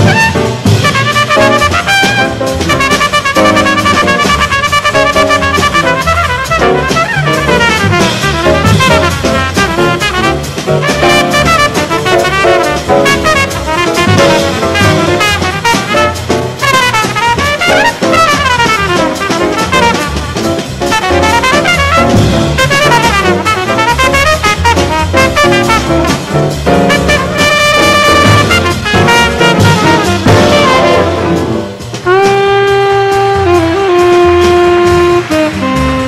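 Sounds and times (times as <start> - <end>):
tenor saxophone playing: 0.0 - 26.1, 26.9 - 31.4, 32.0 - 36.0
drum kit: 0.0 - 36.0
trumpet solo: 0.0 - 36.0
upright bass walking: 0.0 - 36.0.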